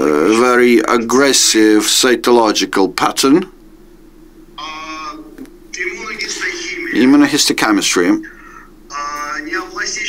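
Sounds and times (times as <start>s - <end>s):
faint low hum: 0.0s - 10.0s
man saying uhh: 4.6s - 7.3s, 8.1s - 10.0s.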